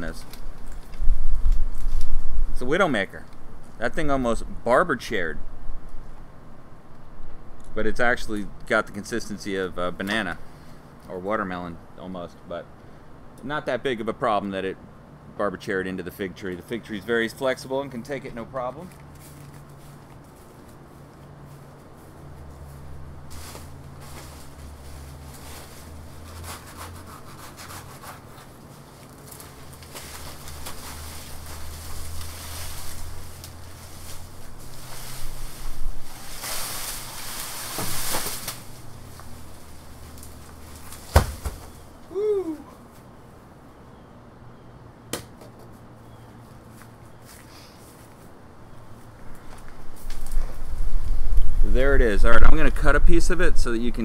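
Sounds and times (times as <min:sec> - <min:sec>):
dry leaves rustling and scraping: 0:00.0 - 0:02.8, 0:18.7 - 0:42.0, 0:46.4 - 0:53.3
low steady hum: 0:00.0 - 0:54.0.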